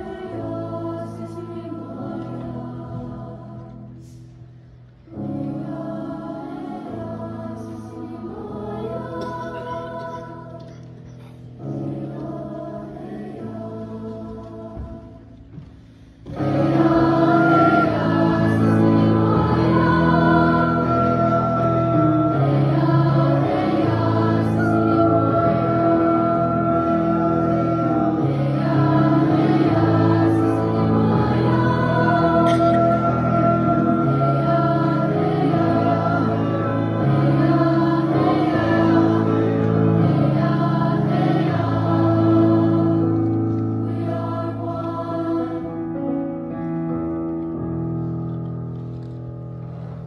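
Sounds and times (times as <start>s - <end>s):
choir singing: 0.0s - 4.4s, 5.1s - 10.9s, 11.6s - 15.6s, 16.3s - 46.6s
piano accompaniment: 0.0s - 50.0s.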